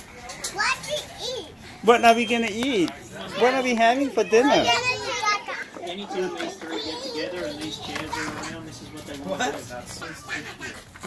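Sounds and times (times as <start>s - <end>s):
toddlers babbling: 3.2s - 9.0s.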